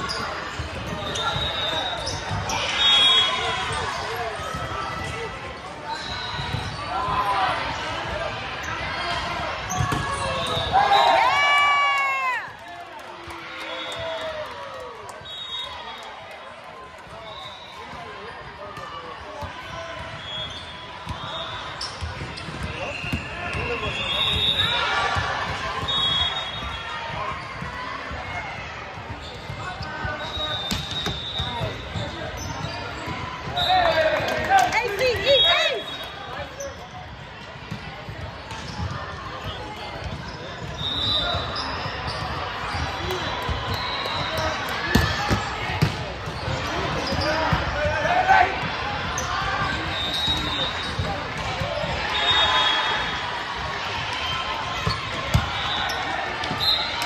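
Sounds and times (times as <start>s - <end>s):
sneaker squeaks on hardwood: 0.0s - 4.9s, 29.0s - 33.8s, 38.4s - 47.8s, 49.1s - 52.8s
players' voices and shouts: 0.0s - 57.0s
balls bouncing and being struck: 9.0s - 10.8s, 21.0s - 35.2s, 36.6s - 52.0s, 53.6s - 57.0s.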